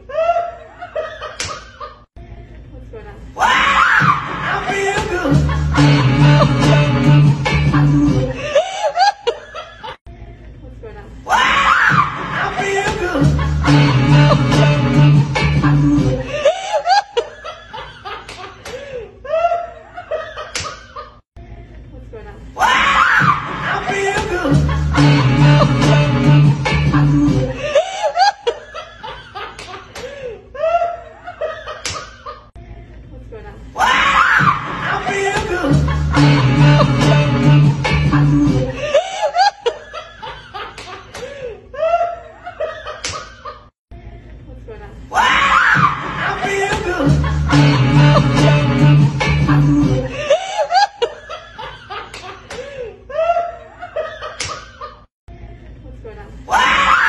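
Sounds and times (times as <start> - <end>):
man laughing and exclaiming: 3.4 - 6.8, 11.3 - 14.3, 22.6 - 26.0, 33.8 - 37.3, 45.1 - 48.6
dance music: 3.6 - 8.6, 11.6 - 16.5, 22.8 - 27.8, 34.0 - 39.0, 45.8 - 50.4
giggling laughter: 8.2 - 10.0, 16.1 - 21.2, 27.6 - 32.5, 38.7 - 43.7, 46.0 - 47.7, 49.9 - 55.1.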